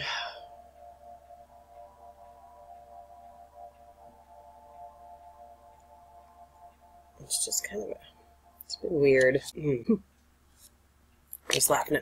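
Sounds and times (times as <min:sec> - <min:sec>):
faint drone of held tones: 0:00.0 - 0:10.0.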